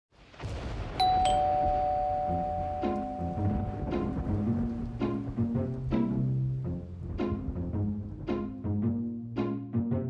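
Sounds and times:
ding-dong doorbell chime: 1.0s - 4.1s
low rumble: 1.0s - 8.9s
spooky halloween tune: 1.0s - 10.0s.

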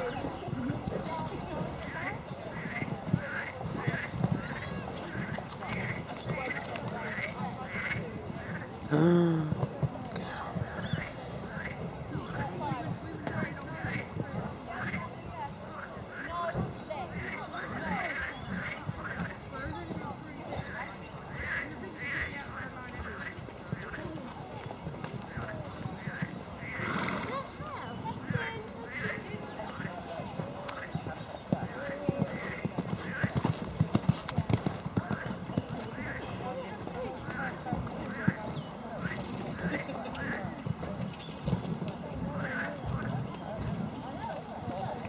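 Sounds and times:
spectators chattering: 0.0s - 45.0s
voices in background: 0.0s - 45.0s
horse hooves on sand and gravel: 22.5s - 45.0s.

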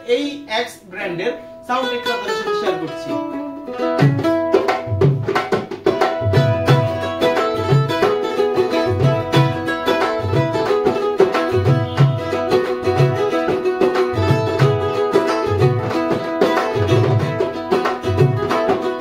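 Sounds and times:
ukulele playing: 1.7s - 19.0s.

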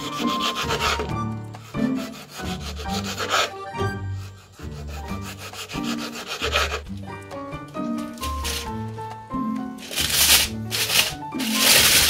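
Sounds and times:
knife slicing tomato on board: 0.0s - 1.2s, 1.8s - 3.6s, 4.6s - 7.0s
soft background music: 0.0s - 12.0s.

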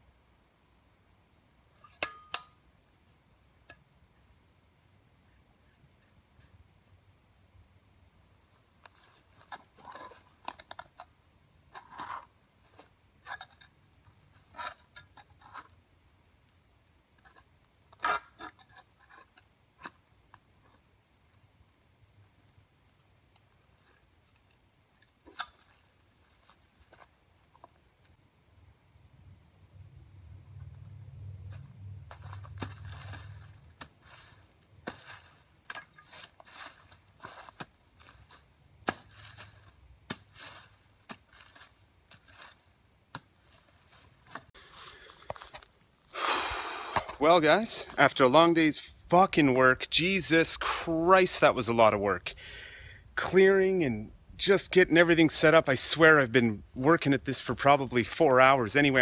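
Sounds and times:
low hum: 28.3s - 34.6s
leaves crackling: 29.7s - 48.6s
hand tool striking soil: 38.8s - 41.7s.

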